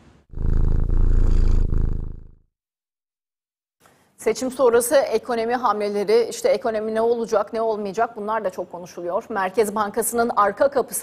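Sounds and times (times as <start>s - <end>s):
cat purring loudly: 0.3s - 2.4s.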